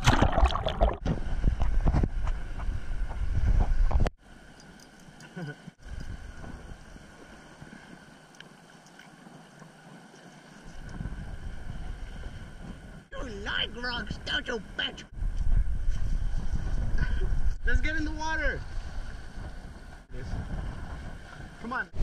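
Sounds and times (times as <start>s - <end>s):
wind buffeting camera housing: 0.9s - 4.1s, 5.8s - 7.2s, 8.4s - 13.1s, 15.1s - 17.8s, 18.6s - 22.0s.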